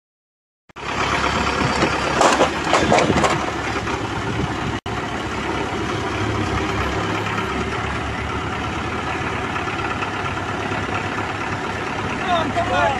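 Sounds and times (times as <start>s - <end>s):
diesel engine idling: 0.8s - 12.9s
knocking and rattling: 1.6s - 4.0s.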